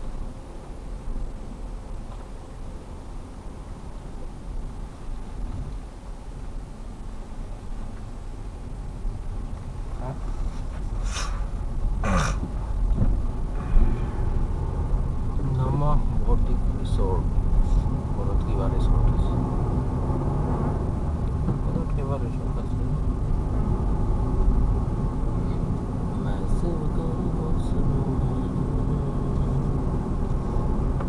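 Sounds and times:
engine and tyre rumble: 0:00.0 - 0:31.0.

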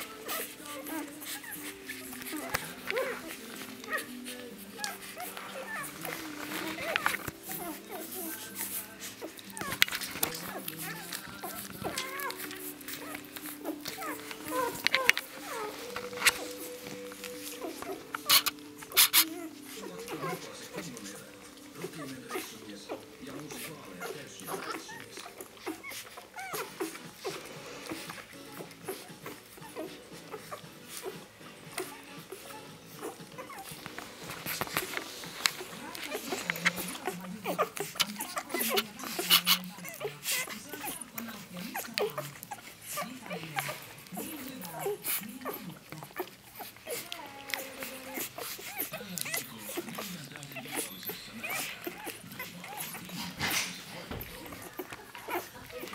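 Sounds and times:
puppies squeaking and whimpering: 0:00.0 - 0:55.9
puppies' low cries: 0:00.0 - 0:55.9.

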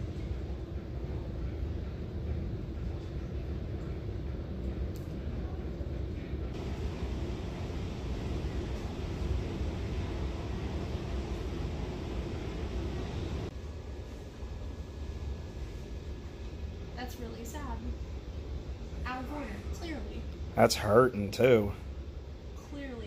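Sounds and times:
low rumble: 0:00.0 - 0:20.5.

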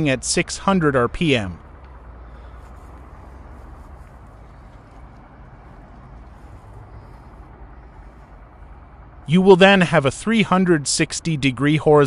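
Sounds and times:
faint outdoor low rumble: 0:00.0 - 0:11.8.

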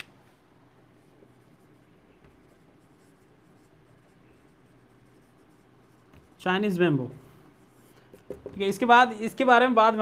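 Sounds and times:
marker writing on whiteboard: 0:00.8 - 0:08.9.

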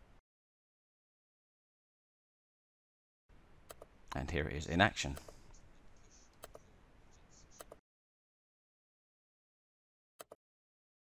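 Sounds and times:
computer mouse click: 0:06.3 - 0:06.6, 0:07.6 - 0:07.8, 0:10.2 - 0:10.4.

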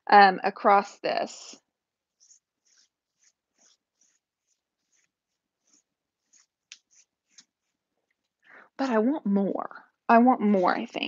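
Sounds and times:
dry paintbrush brushing wood: 0:02.1 - 0:07.8.

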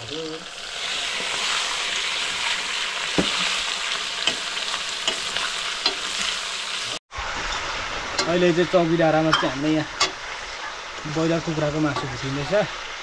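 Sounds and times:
chicken sizzling in hot oil: 0:00.0 - 0:13.0.

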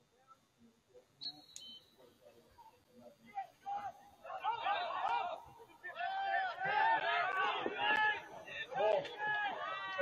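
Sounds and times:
people shouting calls: 0:03.2 - 0:10.0.

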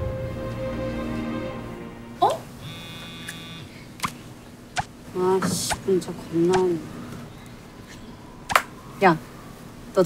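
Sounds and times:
phone message beep: 0:02.6 - 0:03.7.

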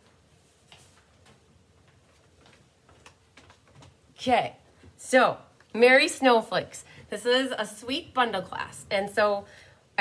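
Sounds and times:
faint clicks and knocks: 0:00.0 - 0:04.1
faint steady hum: 0:00.0 - 0:10.0.

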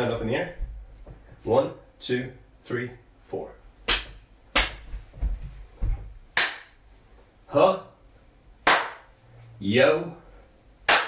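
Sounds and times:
sharp hand clap: 0:03.9 - 0:04.9, 0:06.3 - 0:06.8, 0:08.6 - 0:09.1
foot stomps on wooden floor: 0:04.8 - 0:06.2.

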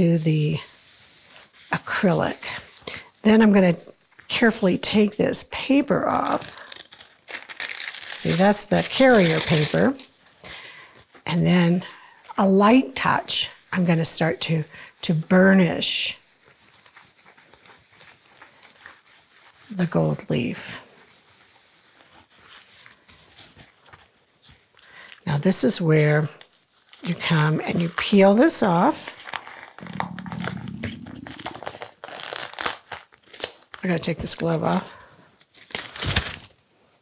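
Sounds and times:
plastic sheet and tape crinkling: 0:05.6 - 0:11.3, 0:15.5 - 0:36.6
paper towel rustling: 0:15.2 - 0:24.7
low vocal hum: 0:29.8 - 0:31.6.

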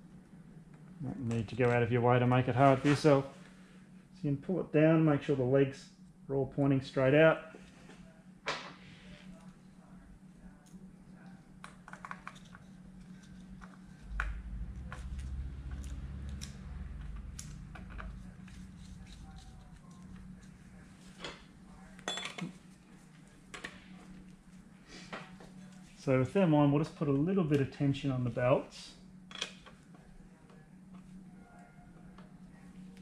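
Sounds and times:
steady low hum: 0:00.0 - 0:33.0
low rumble: 0:13.9 - 0:19.4.

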